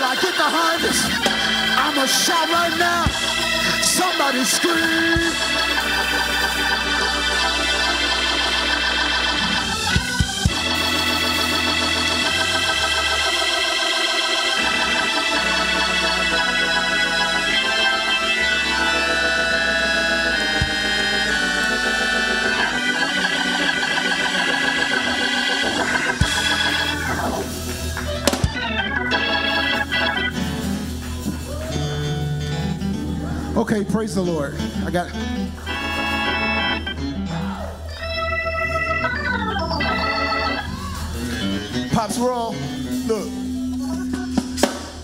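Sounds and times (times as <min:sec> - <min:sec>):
organ chords: 0:00.0 - 0:45.0.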